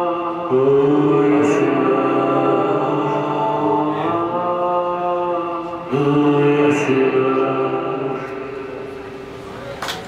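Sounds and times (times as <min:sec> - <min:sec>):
ambient drone music: 0:00.0 - 0:09.7.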